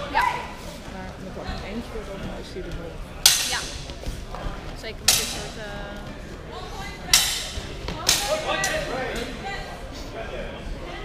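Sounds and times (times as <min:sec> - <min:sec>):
swords clashing and ringing: 0:03.2 - 0:03.8, 0:05.1 - 0:05.5, 0:07.1 - 0:08.8.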